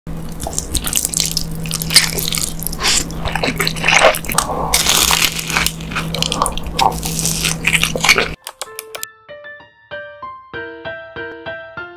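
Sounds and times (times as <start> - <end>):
crunchy bites: 0.3 - 8.4
noodles slurped and chewed: 0.4 - 8.4.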